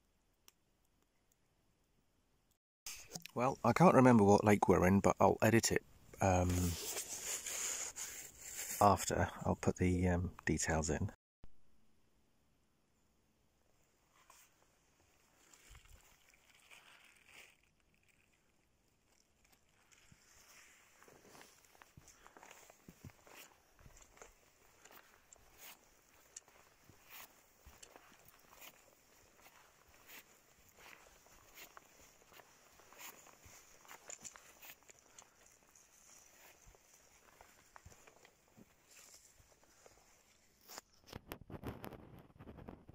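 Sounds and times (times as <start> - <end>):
footsteps on dry forest floor: 6.2 - 8.8, 14.1 - 17.7, 19.8 - 41.0.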